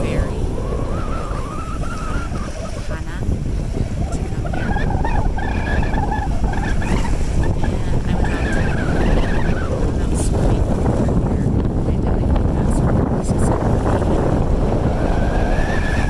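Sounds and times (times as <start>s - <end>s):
waves washing against rocks: 0.0s - 16.0s
wind buffeting microphone: 0.0s - 16.0s.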